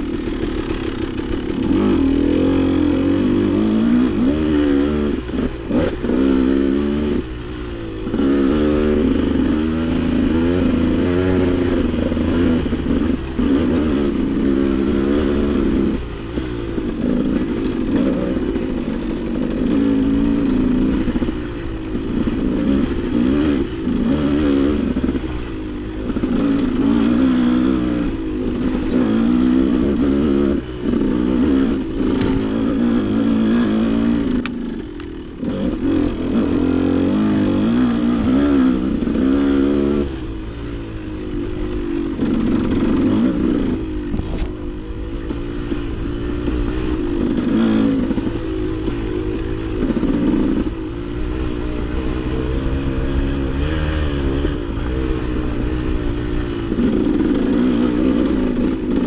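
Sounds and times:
dirt bike engine revving: 0.0 - 59.0.

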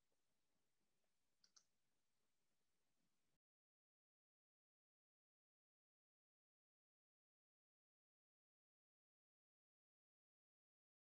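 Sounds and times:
faint quick clicks: 1.4 - 1.7.

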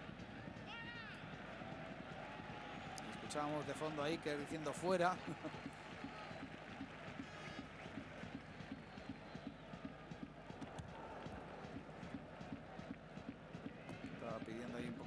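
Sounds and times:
quick irregular taps: 5.6 - 15.0.

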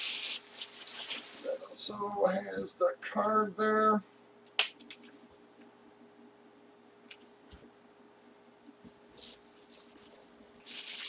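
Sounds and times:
helmet and packaging handling noise: 0.3 - 1.6.

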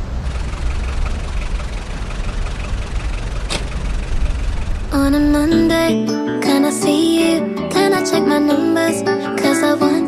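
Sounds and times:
low engine rumble: 0.0 - 6.0.

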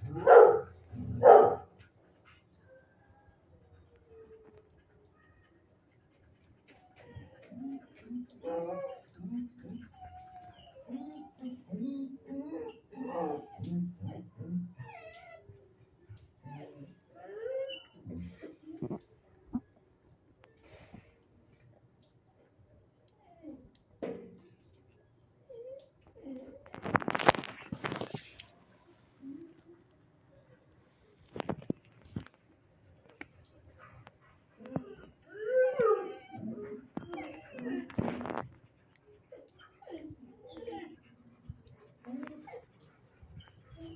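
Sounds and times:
dogs whining and yowling: 0.0 - 21.2, 22.0 - 29.8, 30.9 - 43.9.

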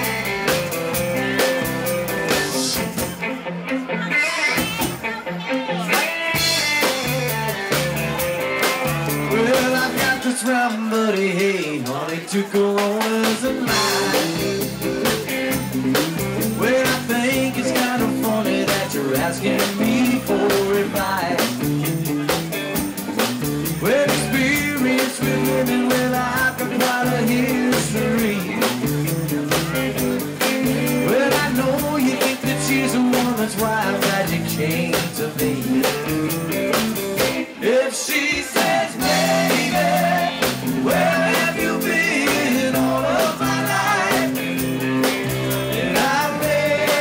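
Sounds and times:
steady drum beat: 0.0 - 3.3, 6.0 - 47.0
bass guitar: 0.0 - 47.0
electric guitar: 0.0 - 47.0.

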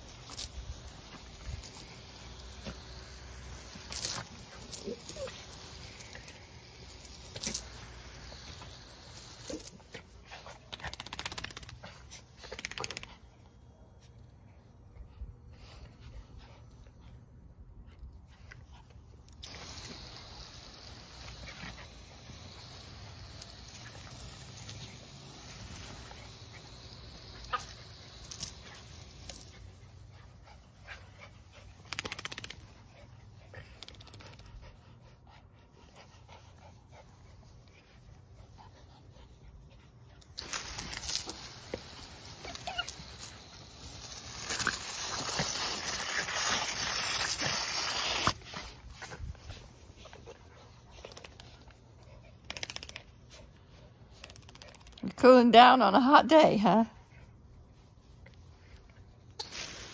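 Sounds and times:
garden hose spraying water: 0.0 - 14.9, 18.2 - 59.9.

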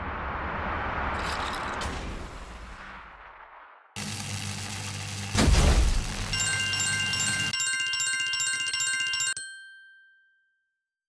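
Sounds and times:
electronic bell-like chime trill: 6.3 - 10.6
held ringing tones: 6.3 - 10.9.

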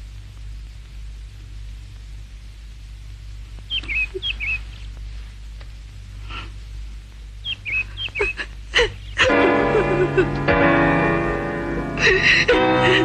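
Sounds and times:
low film soundtrack hum: 0.0 - 13.0
high squeaky chirps: 3.7 - 4.9, 7.4 - 9.3.

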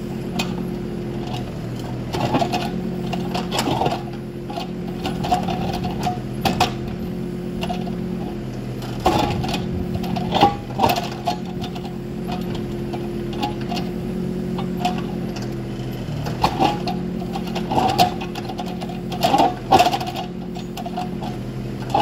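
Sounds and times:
diesel engine running: 0.0 - 22.0
bucket scraping dirt and gravel: 9.0 - 12.6.

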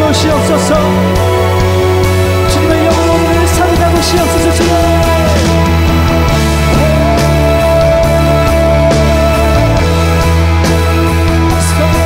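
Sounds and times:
bass: 0.0 - 12.0
worship band music: 0.0 - 12.0.

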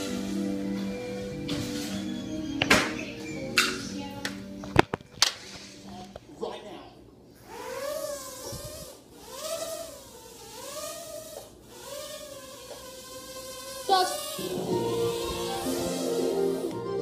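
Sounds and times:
high-pitched voice rising tones: 14.4 - 17.0.

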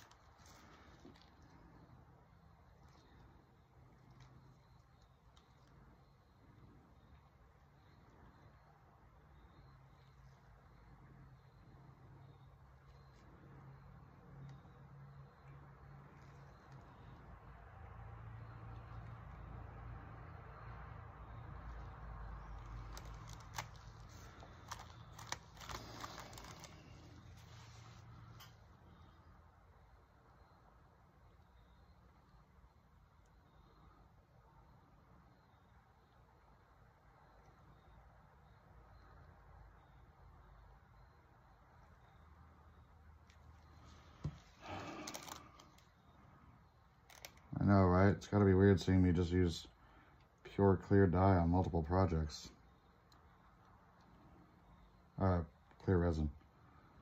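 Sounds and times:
faint low hum: 0.0 - 57.0.

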